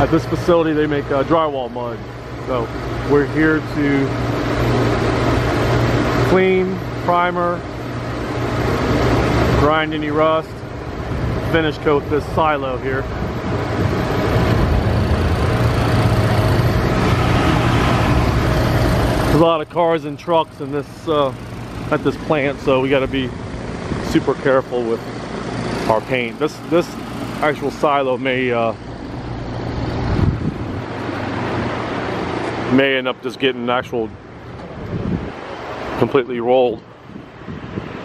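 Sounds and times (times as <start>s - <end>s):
industrial machinery hum: 0.0s - 38.0s
wind rumble on microphone: 10.9s - 19.3s, 29.7s - 32.7s, 34.1s - 36.0s, 36.8s - 38.0s
wind on microphone: 29.9s - 32.3s, 34.6s - 35.5s, 37.0s - 38.0s.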